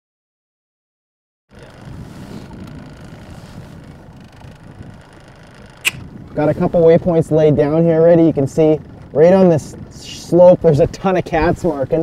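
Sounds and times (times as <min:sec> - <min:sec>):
boat motor humming: 0:01.5 - 0:10.4
wind noise on microphone: 0:01.5 - 0:12.0
sharp click: 0:05.8 - 0:06.1.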